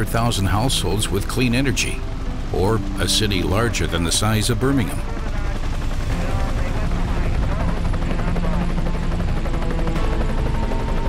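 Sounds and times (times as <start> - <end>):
helicopter rotor beating: 0.0 - 11.0
turbine engine whine: 0.0 - 11.0.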